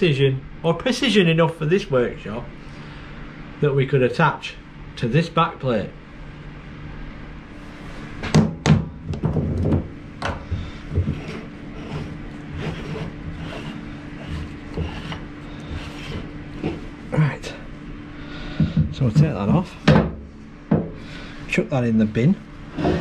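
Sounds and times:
steady low hum: 0.0 - 23.0
metal knocks and clunks: 8.3 - 10.6, 18.6 - 21.0.

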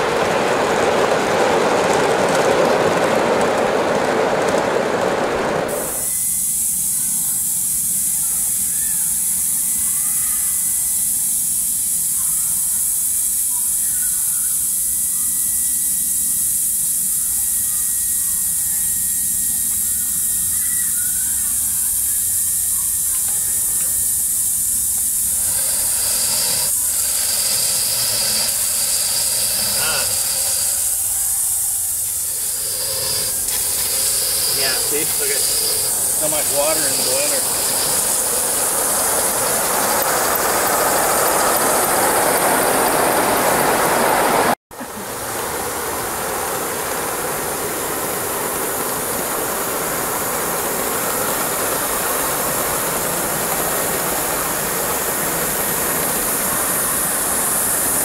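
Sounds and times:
model train rolling on track: 0.0 - 58.0
steam hissing: 0.0 - 58.0
thin steady tone: 5.7 - 58.0.

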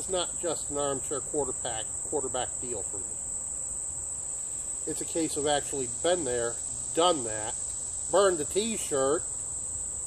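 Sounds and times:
insects trilling: 0.0 - 10.0.

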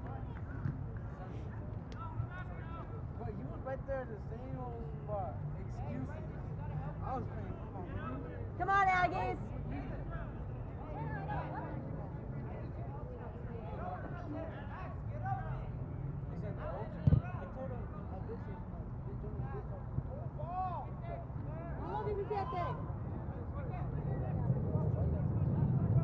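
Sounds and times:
sharp thump: 17.0 - 17.3.

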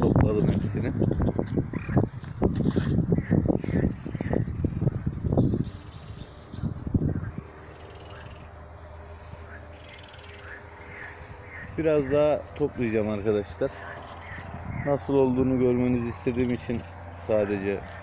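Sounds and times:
outdoor background noise: 0.0 - 18.0
frogs croaking: 1.4 - 2.1, 3.1 - 18.0.

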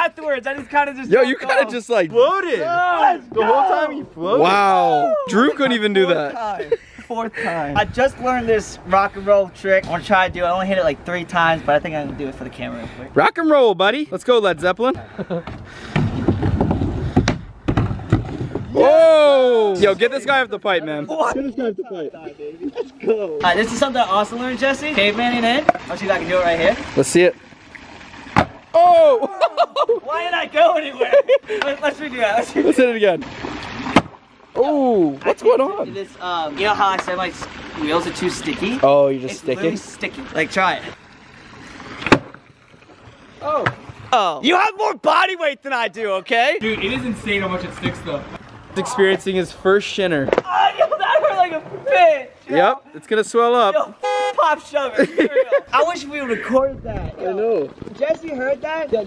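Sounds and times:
skateboard knocking against shin: 15.4 - 18.7
skateboard wheels rolling: 15.5 - 19.1.

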